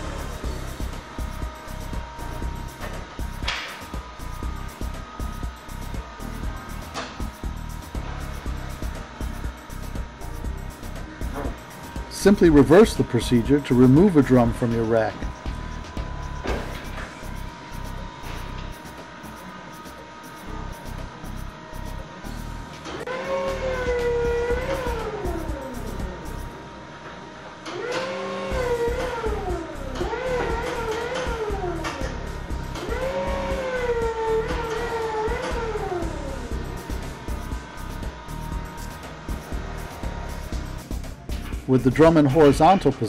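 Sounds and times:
background music: 0.0 - 43.0
forklift motor whining: 0.0 - 43.0.

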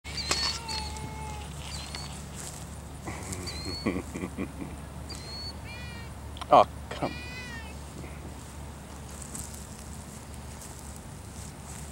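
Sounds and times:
cat giving high chirps: 0.1 - 2.2, 3.5 - 4.0, 5.1 - 6.2, 7.0 - 7.8.

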